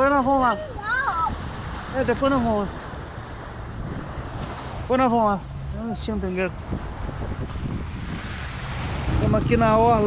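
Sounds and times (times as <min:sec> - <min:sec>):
river water washing against embankment: 0:00.6 - 0:10.0
wind buffeting microphone: 0:00.8 - 0:04.6, 0:06.5 - 0:10.0.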